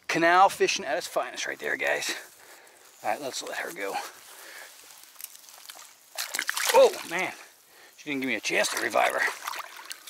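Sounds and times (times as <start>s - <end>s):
fish splashing in shallow water: 4.8s - 7.6s, 8.4s - 10.0s
man exclaiming: 6.6s - 7.4s.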